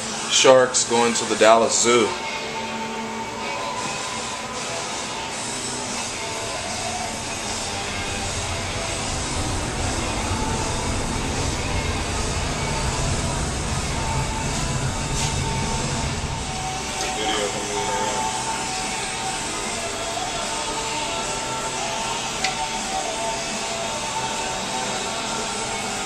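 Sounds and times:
background music: 0:00.0 - 0:26.0
indistinct voices: 0:04.6 - 0:26.0.

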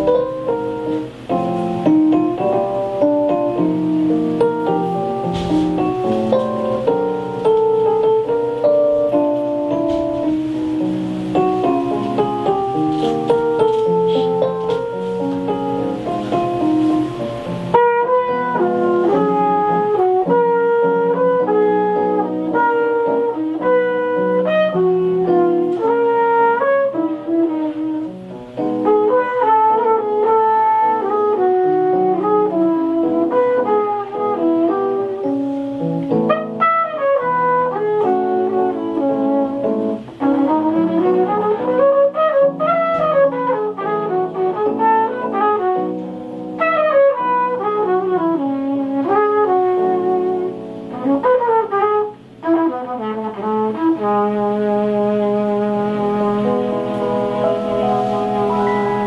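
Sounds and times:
flugelhorn solo: 0:00.0 - 0:01.2, 0:02.4 - 0:59.0
digital piano chords: 0:00.0 - 0:59.0.

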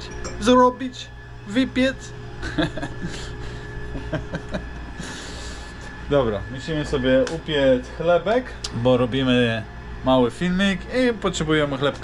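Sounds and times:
steady low hum: 0:00.0 - 0:12.0
person chuckling softly: 0:02.4 - 0:05.5.

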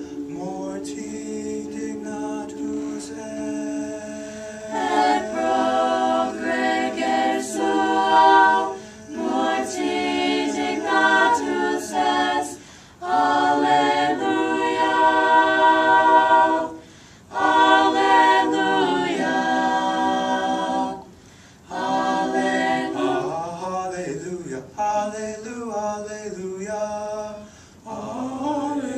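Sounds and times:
mixed choir singing a cappella: 0:00.0 - 0:25.2, 0:25.8 - 0:28.9.

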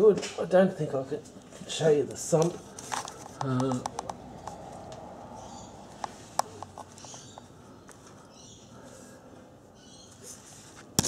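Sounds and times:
camera handling rustle: 0:02.4 - 0:04.6.

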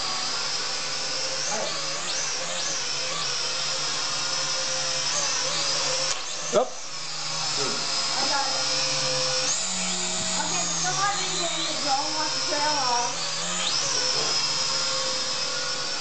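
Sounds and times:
drone motors whining: 0:00.0 - 0:16.0.

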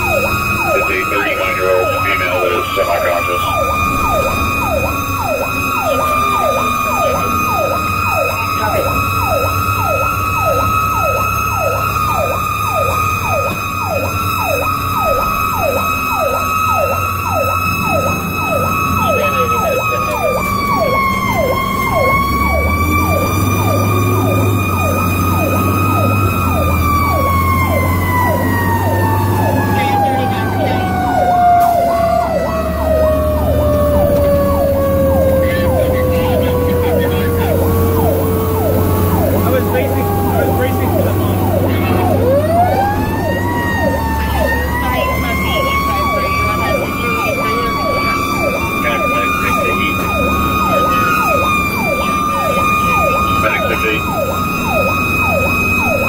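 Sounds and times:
electronic yelp siren: 0:00.0 - 0:56.0
mechanical siren screaming: 0:00.0 - 0:56.0.

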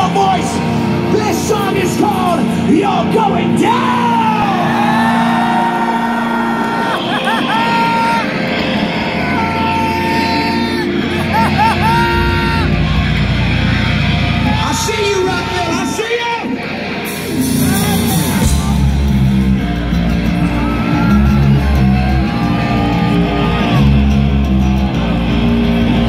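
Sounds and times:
crowd noise: 0:00.0 - 0:26.0
rock band playing live: 0:00.0 - 0:26.0.

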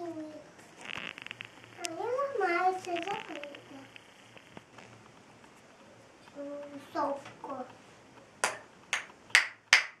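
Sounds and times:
child clapping hands: 0:08.4 - 0:10.0.

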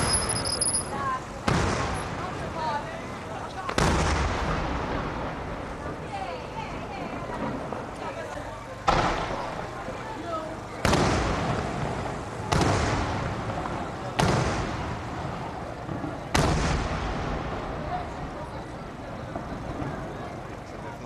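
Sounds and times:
rolling echo: 0:00.0 - 0:21.0.

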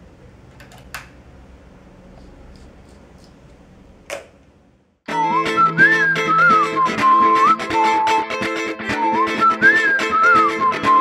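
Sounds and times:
electric guitar chords: 0:05.1 - 0:11.0
whistled melody: 0:05.1 - 0:11.0.

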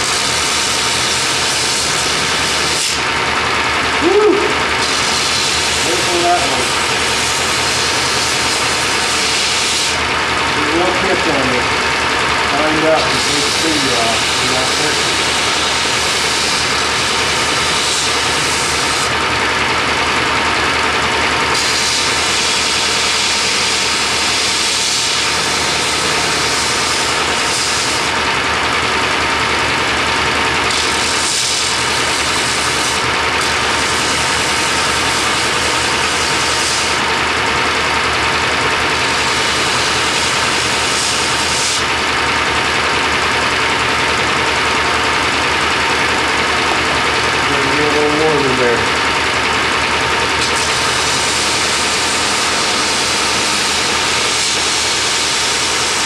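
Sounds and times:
belt grinder grinding steel: 0:00.0 - 0:56.0.

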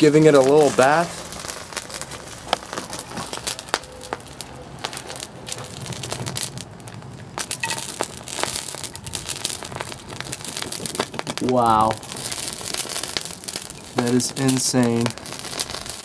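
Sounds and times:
magnesium powder burning and crackling: 0:00.0 - 0:16.0.

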